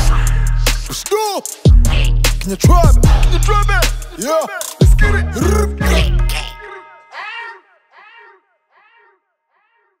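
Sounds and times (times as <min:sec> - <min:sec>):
echoing pitched vocal cry: 0:03.5 - 0:10.0.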